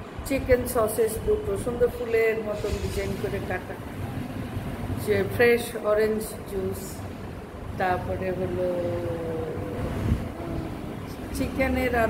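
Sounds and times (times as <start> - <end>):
woman speaking: 0.2 - 4.0, 5.0 - 7.1, 7.7 - 12.0.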